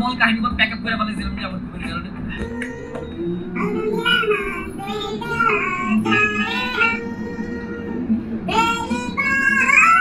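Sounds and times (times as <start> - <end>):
person singing a melody: 2.4 - 10.0.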